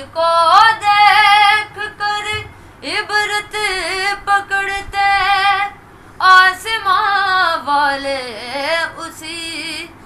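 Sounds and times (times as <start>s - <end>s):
boy singing unaccompanied: 0.0s - 10.0s.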